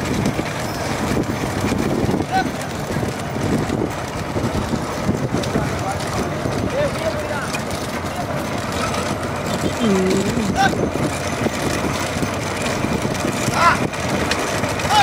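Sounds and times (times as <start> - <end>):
bullock cart trotting: 0.0 - 15.0
motorcycle engines running: 0.0 - 15.0
men calling out: 9.6 - 10.9, 13.5 - 13.9.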